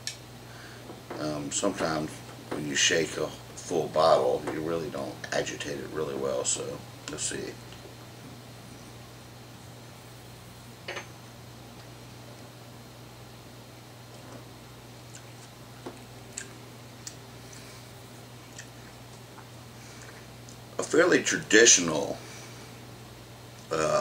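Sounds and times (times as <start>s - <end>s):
steady low hum: 0.0s - 24.0s
mouth clicks and smacks: 15.1s - 15.6s, 16.3s - 17.7s, 18.5s - 20.6s.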